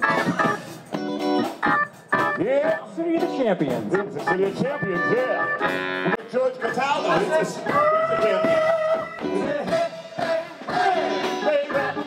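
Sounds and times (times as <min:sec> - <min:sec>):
organ keyboard chord stabs: 0:00.0 - 0:12.0
soul band playing: 0:00.0 - 0:12.0.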